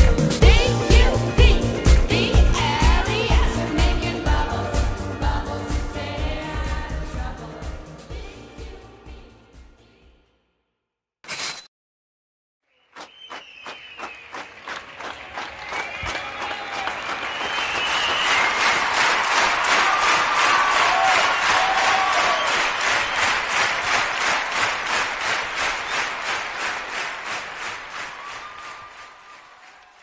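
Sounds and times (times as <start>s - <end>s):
crowd clapping in rhythm: 0.0s - 8.0s, 12.8s - 30.0s.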